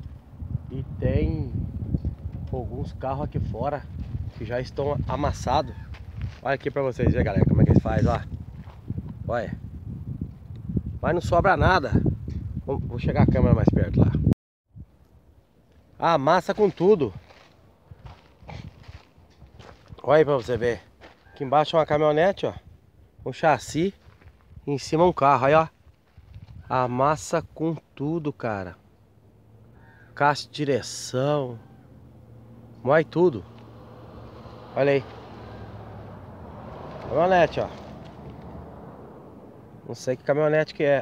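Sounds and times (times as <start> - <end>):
footsteps on sandy gravel: 3.9 - 4.9, 5.8 - 6.8, 8.4 - 9.2, 16.4 - 21.4, 23.9 - 24.6
man's voice: 37.0 - 37.8.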